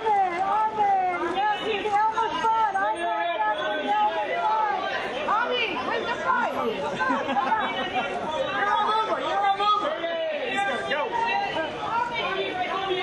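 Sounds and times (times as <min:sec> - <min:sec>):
babble of overlapping voices: 0:00.0 - 0:13.0.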